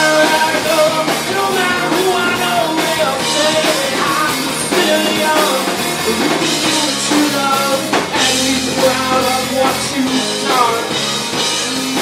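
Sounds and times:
rock band playing loudly: 0:00.0 - 0:12.0.

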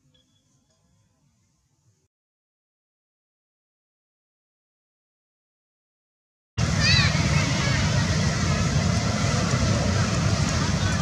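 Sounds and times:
wind buffeting microphone: 0:06.6 - 0:11.0.

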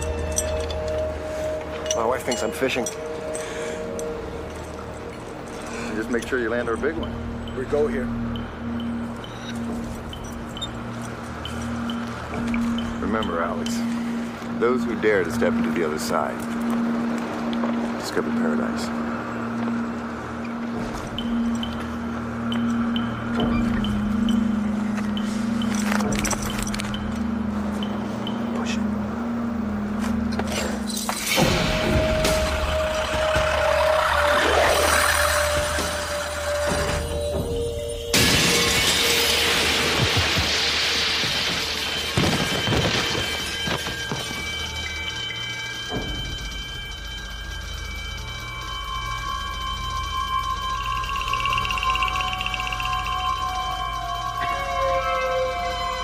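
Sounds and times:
dramatic background music: 0:00.0 - 0:56.0
glass shattering: 0:30.5 - 0:46.6
falling glass crashing: 0:37.9 - 0:45.3.

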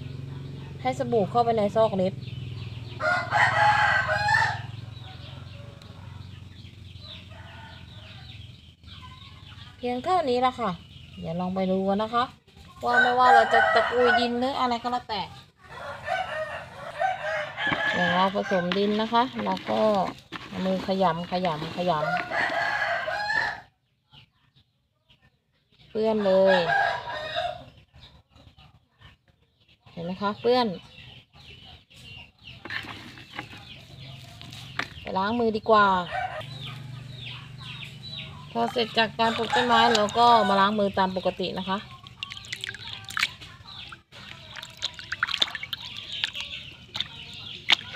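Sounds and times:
rooster crowing: 0:03.0 - 0:06.2, 0:07.1 - 0:08.4, 0:12.8 - 0:14.5, 0:15.6 - 0:18.9, 0:21.9 - 0:23.7, 0:26.2 - 0:27.7, 0:36.0 - 0:36.5, 0:39.2 - 0:40.8
woman speaking: 0:38.5 - 0:41.9.

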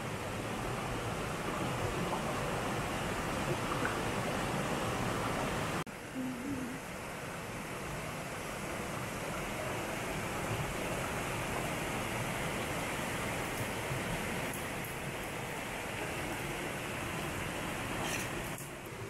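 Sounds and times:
mountain stream rushing over rocks: 0:06.9 - 0:19.0.

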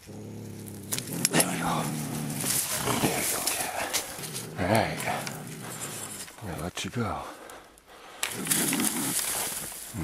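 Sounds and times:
scuffling rustle of brush and snow: 0:00.4 - 0:06.7, 0:08.3 - 0:10.0.

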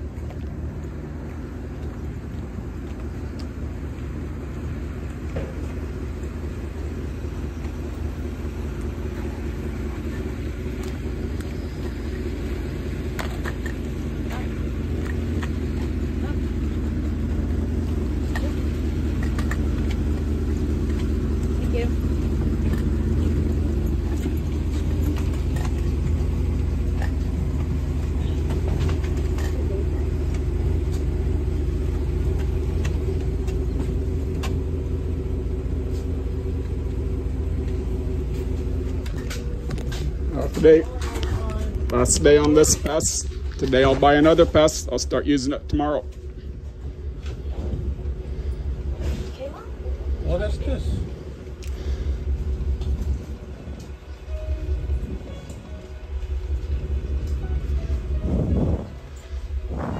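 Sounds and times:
bus engine idling: 0:00.0 - 0:59.9.

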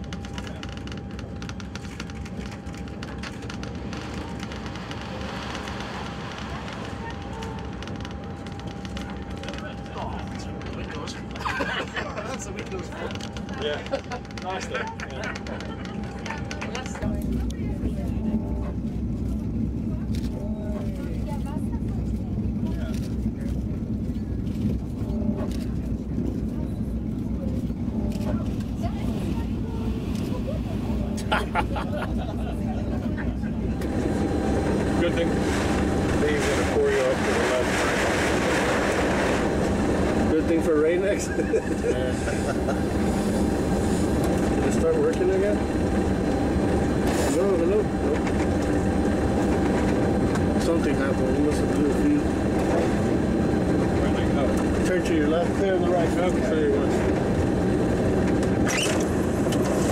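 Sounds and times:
aircraft piston engines throbbing: 0:00.0 - 0:59.9.

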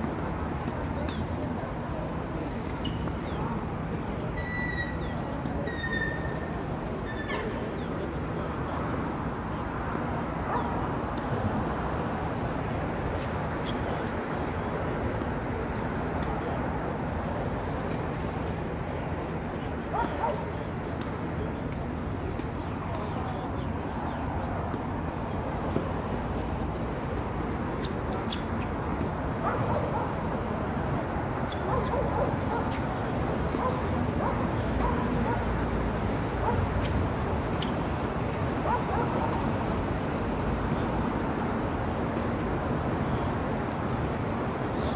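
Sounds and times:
highway traffic rumble: 0:00.0 - 0:44.9.

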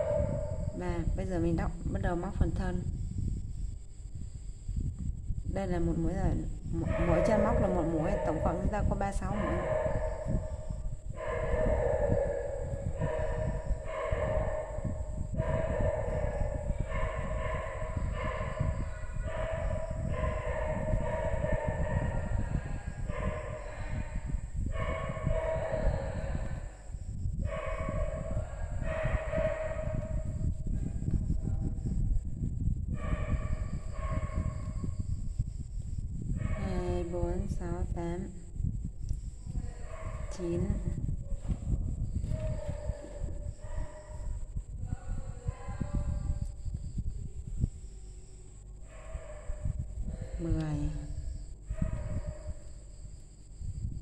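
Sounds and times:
low background rumble: 0:00.0 - 0:54.0
woman counting aloud: 0:00.8 - 0:02.8, 0:05.5 - 0:09.8, 0:40.3 - 0:41.0, 0:50.3 - 0:51.1.

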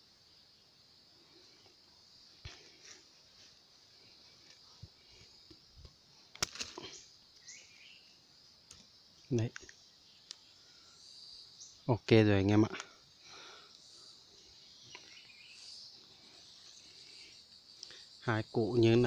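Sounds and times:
forest insects buzzing: 0:00.0 - 0:19.0
leaf litter rustling and clicks: 0:06.3 - 0:07.0.

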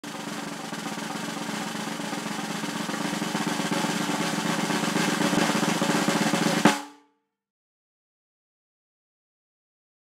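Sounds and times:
snare drum roll: 0:00.0 - 0:07.0.

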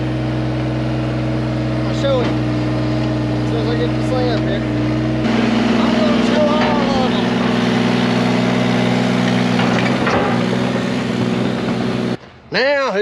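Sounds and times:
diesel engine running steadily: 0:00.0 - 0:12.4.

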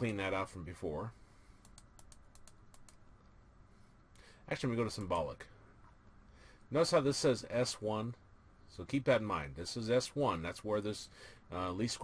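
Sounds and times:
faint computer mouse clicks: 0:01.6 - 0:03.0.

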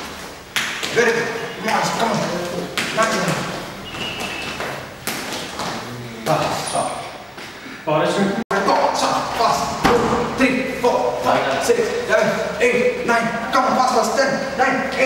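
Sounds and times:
man calling out: 0:08.0 - 0:15.0.

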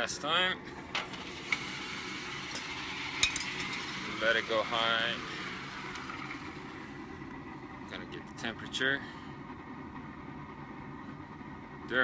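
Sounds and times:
steady low rumble: 0:02.2 - 0:12.0.

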